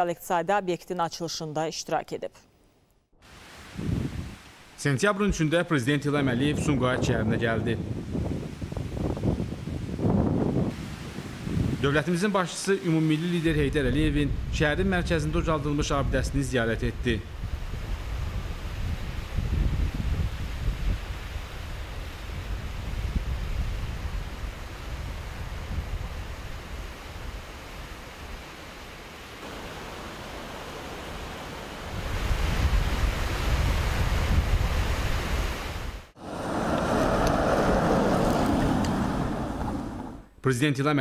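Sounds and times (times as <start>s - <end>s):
wind rumbling on microphone: 3.4s - 4.5s, 6.1s - 12.0s, 13.5s - 40.3s
even hiss: 11.8s - 16.0s
steady rush of noise: 29.4s - 33.3s, 36.1s - 40.3s.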